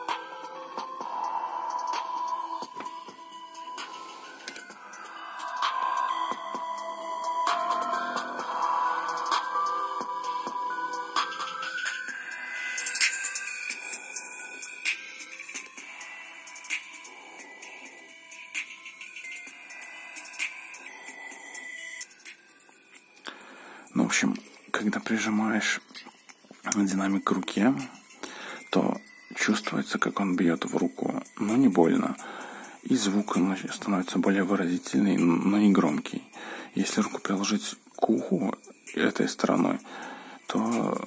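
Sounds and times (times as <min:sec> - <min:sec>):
music through small speaker: 0:00.0 - 0:41.0.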